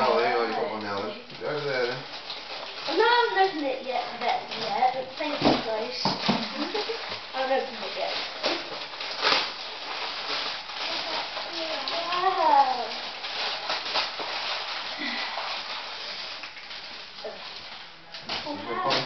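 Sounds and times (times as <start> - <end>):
wrapping paper rustling and tearing: 0.0 - 19.0.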